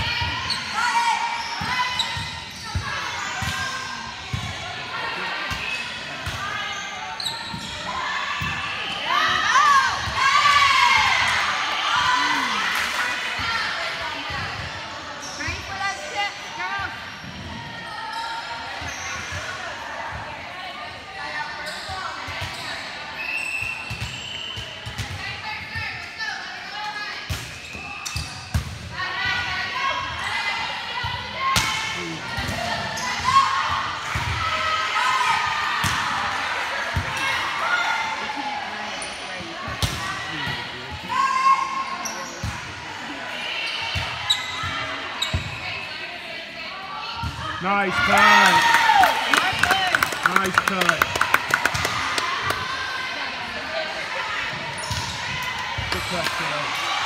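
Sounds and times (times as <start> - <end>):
players calling out: 47.6 - 56.9.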